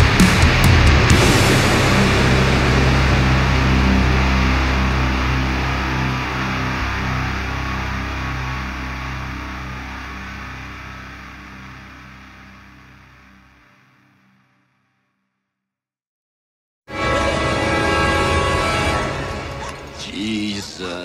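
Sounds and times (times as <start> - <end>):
distorted guitar chord ringing: 0.0 - 14.5, 16.9 - 20.4.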